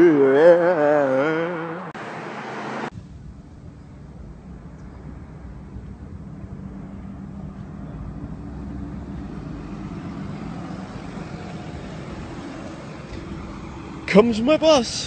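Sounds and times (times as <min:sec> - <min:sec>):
bus engine hum: 0:00.0 - 0:15.0
street noise: 0:00.0 - 0:15.0.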